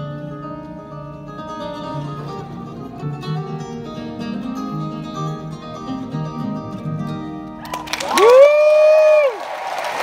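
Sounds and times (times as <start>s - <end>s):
crowd applause: 7.6s - 10.0s
person whooping: 7.6s - 10.0s.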